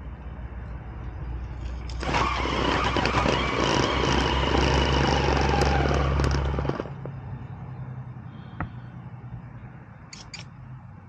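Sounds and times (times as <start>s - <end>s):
tyres grinding on rock: 1.8s - 7.1s
electric motor running under load: 1.9s - 7.0s.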